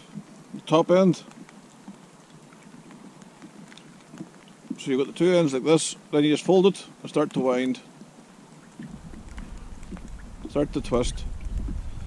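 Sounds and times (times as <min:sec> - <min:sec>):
raindrop ticks: 0:00.0 - 0:06.5, 0:07.1 - 0:11.8
light rain pattering: 0:00.0 - 0:12.0.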